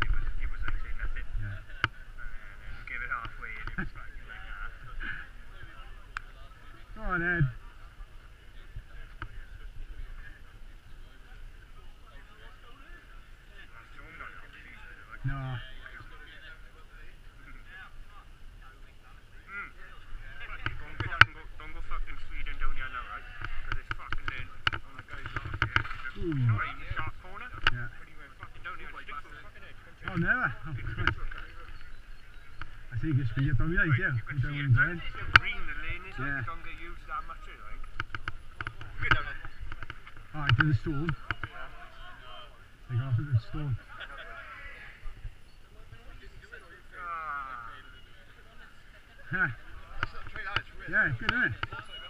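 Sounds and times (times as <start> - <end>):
indistinct group chatter: 0.0 - 52.0.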